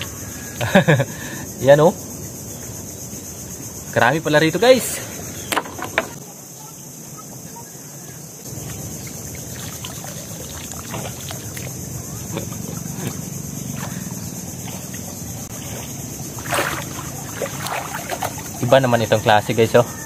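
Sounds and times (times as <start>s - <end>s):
water sloshing and lapping: 8.5s - 19.4s
loud splash: 9.3s - 11.7s, 15.6s - 18.7s.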